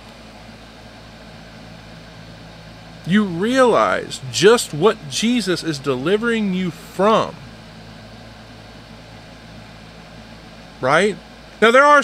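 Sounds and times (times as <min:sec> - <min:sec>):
low hum with hiss: 0:00.0 - 0:12.0
person speaking: 0:03.1 - 0:07.4.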